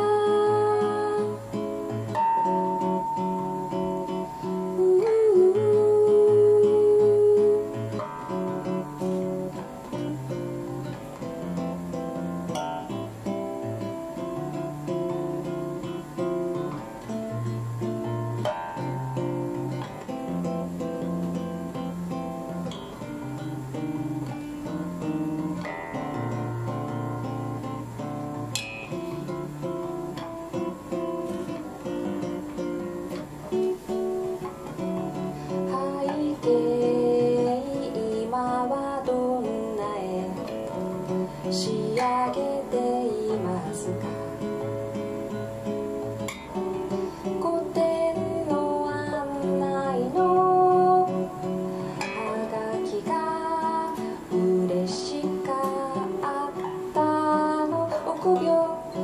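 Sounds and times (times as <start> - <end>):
person singing: 0.0 - 10.4, 35.2 - 44.7, 46.9 - 59.0
fingerpicked nylon-string guitar: 0.0 - 59.0.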